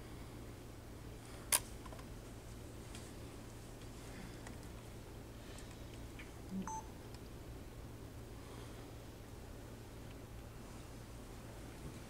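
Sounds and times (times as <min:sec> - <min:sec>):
low electrical hum: 0:00.0 - 0:12.0
two-tone electronic beep: 0:06.6 - 0:06.9.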